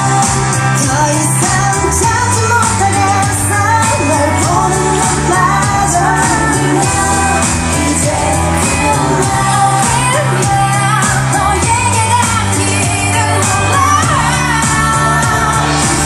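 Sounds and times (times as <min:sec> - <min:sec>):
pop dance song over speakers: 0:00.0 - 0:16.0
women singing into microphones: 0:00.0 - 0:16.0.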